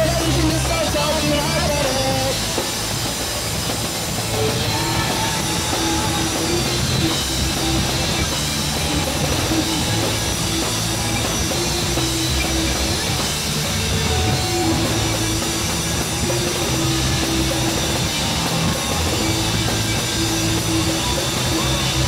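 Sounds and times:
rock band playing live: 0.0s - 22.0s.

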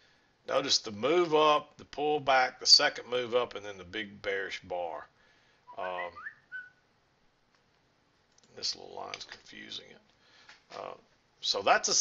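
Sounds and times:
speech: 0.5s - 5.1s, 5.8s - 6.2s, 8.5s - 10.1s, 10.7s - 12.0s
short whistled notes: 5.7s - 6.8s.

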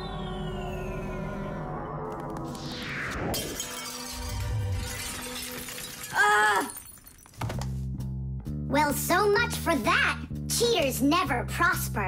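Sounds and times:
background music: 0.0s - 12.0s
glass shattering on floor: 3.3s - 7.7s
person crying out: 6.1s - 6.8s.

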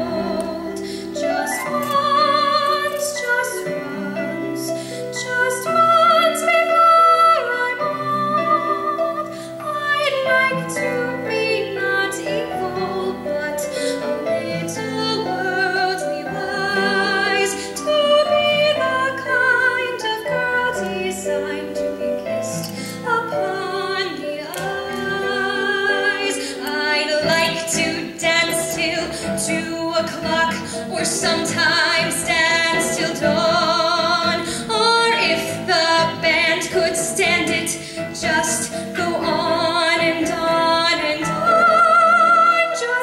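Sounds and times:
instrumental accompaniment: 0.0s - 43.0s
woman singing into microphone: 0.0s - 43.0s.

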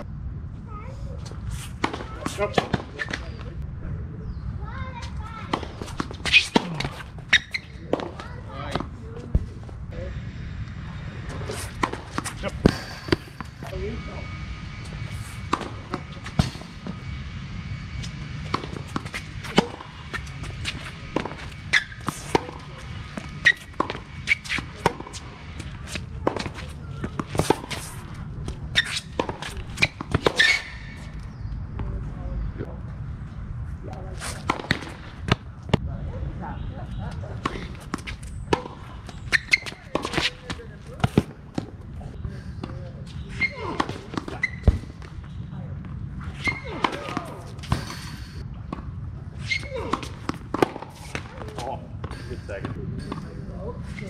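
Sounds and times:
tennis rackets hitting balls: 1.6s - 3.4s, 5.4s - 9.0s, 11.3s - 13.9s, 18.1s - 31.8s, 34.2s - 35.8s, 37.4s - 41.8s, 42.5s - 45.4s, 46.2s - 53.5s
tennis balls bouncing on court: 1.8s - 3.4s, 5.0s - 9.5s, 11.6s - 13.8s, 18.4s - 32.0s, 34.3s - 35.9s, 37.1s - 53.4s.

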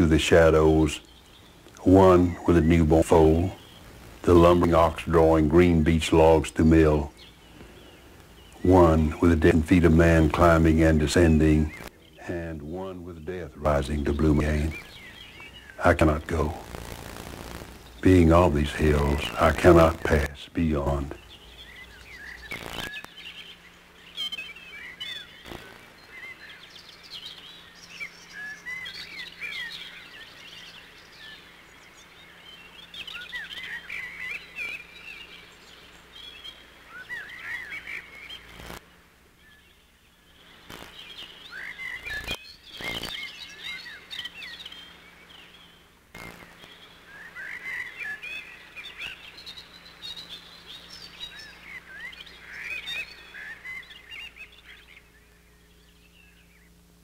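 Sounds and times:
birds chirping and singing: 0.0s - 38.8s, 39.4s - 57.0s
steady low hum: 0.0s - 57.0s.

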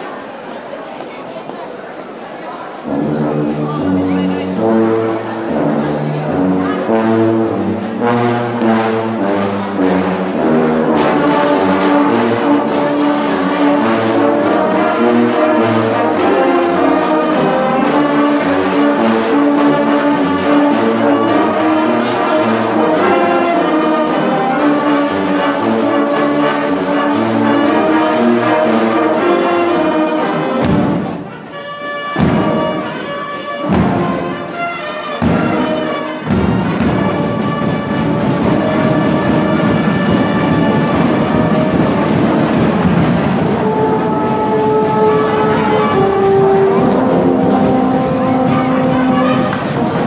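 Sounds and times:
marching band playing: 2.6s - 50.0s.

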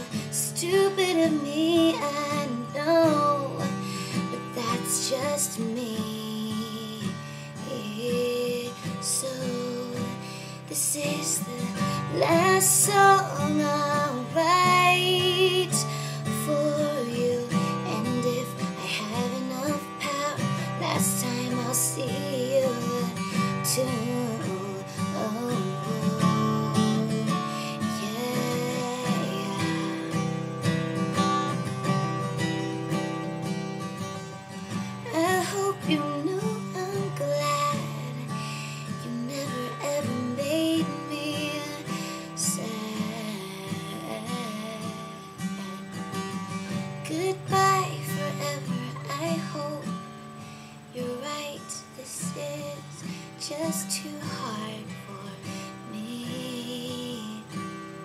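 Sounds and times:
acoustic guitar: 0.0s - 58.0s
young woman singing: 0.0s - 58.0s.

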